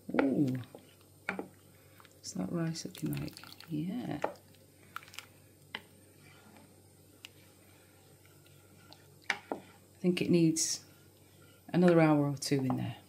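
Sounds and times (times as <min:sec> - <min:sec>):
wooden spoon stirring pudding: 0:00.0 - 0:13.0.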